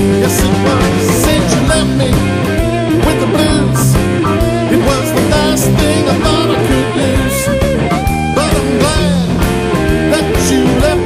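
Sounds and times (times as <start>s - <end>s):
bass and drums: 0.0s - 11.0s
electric guitar lead bending notes: 0.0s - 11.0s.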